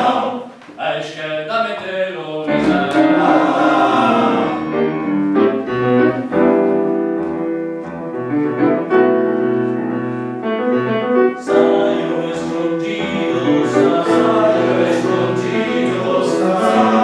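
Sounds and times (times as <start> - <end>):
men's choir singing chords: 0.0 - 0.6, 2.4 - 5.2, 11.4 - 17.0
piano accompaniment: 2.5 - 17.0.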